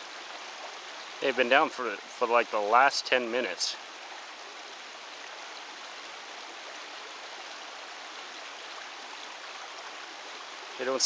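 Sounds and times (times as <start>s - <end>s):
creek water rushing: 0.0s - 11.0s.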